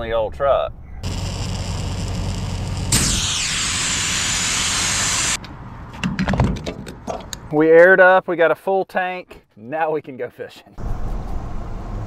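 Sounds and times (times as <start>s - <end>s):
air hose hissing: 1.0s - 5.4s
loud air hiss: 2.6s - 5.4s.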